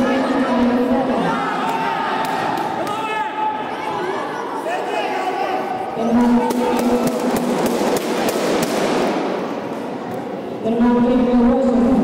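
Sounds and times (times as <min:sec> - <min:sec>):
crowd hum: 0:00.0 - 0:11.0.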